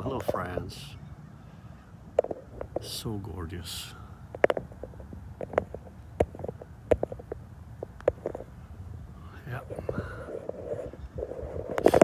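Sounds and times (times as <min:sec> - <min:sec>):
phone handling clicks and knocks: 0:02.2 - 0:02.9, 0:04.3 - 0:08.5.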